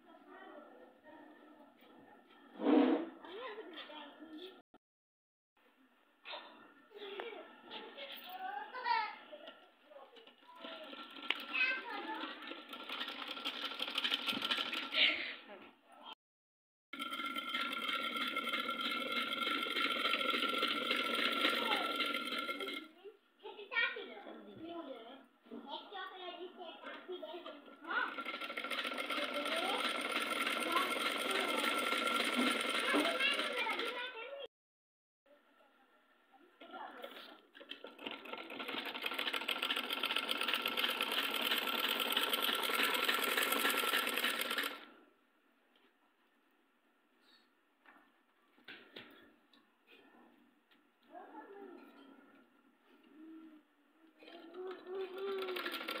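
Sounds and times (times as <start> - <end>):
sewing machine stitching: 10.5 - 15.2, 17.0 - 22.9, 26.8 - 34.2, 37.0 - 45.0, 54.2 - 56.0.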